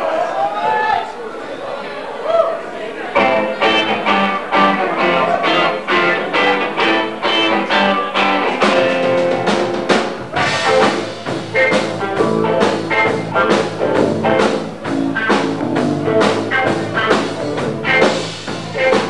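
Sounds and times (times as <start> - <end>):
drum kit steady beat: 3.2 - 19.0
electric guitar: 3.2 - 19.0.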